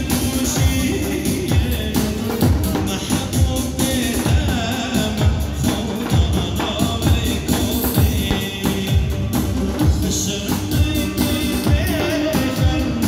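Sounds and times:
man singing into a microphone: 0.0 - 13.0
steady drum beat: 0.0 - 13.0.

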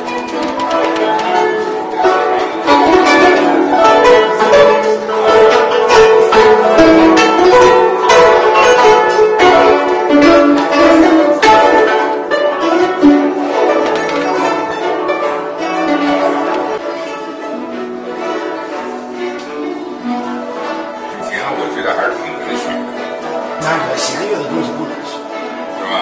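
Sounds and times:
plucked zither melody: 0.0 - 26.0.

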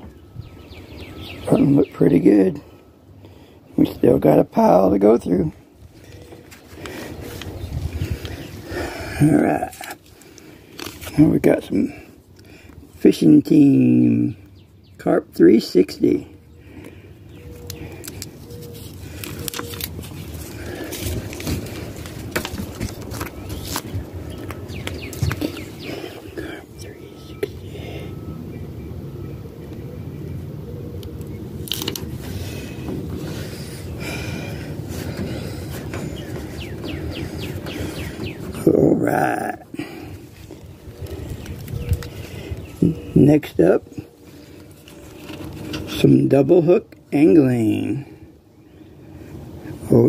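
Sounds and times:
sticker backing crinkling: 17.5 - 25.7.

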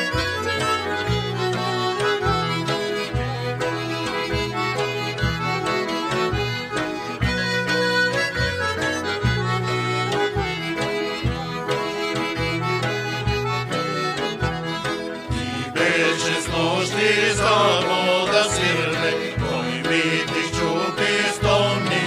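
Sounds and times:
folk band with accordion: 0.0 - 22.0
men singing: 15.4 - 22.0.

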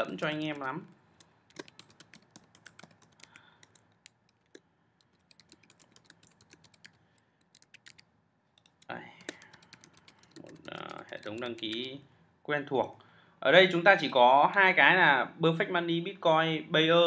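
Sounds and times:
typing on computer keyboard: 0.0 - 12.0.

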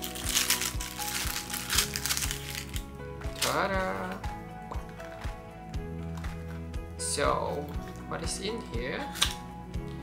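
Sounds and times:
plastic bag crinkling: 0.0 - 3.7
background music with beat: 0.0 - 10.0.

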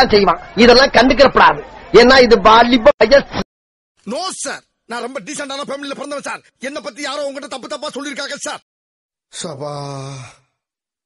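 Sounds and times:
man's sigh-like vocal sound: 9.7 - 10.5.

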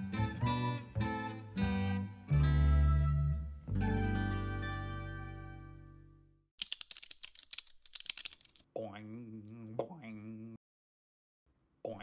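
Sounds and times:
quick irregular clicking: 6.6 - 8.6.

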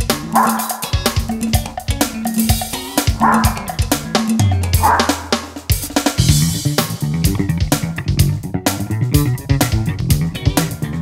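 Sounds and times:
funk groove drums and guitar: 0.0 - 11.0
small dog barking: 0.3 - 1.0, 3.1 - 5.3.

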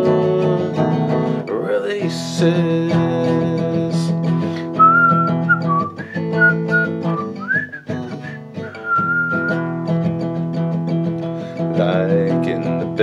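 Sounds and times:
acoustic guitar strumming: 0.0 - 13.0
person whistling a melody: 4.7 - 9.7.

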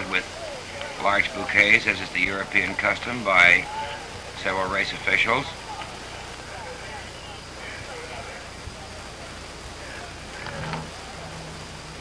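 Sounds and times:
recording hiss: 0.0 - 12.0
low hum: 4.0 - 12.0.

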